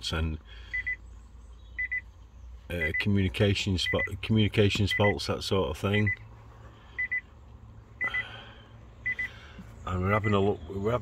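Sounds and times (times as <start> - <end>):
car door chime beeps: 1.8 - 2.0, 4.8 - 5.2, 7.0 - 7.2.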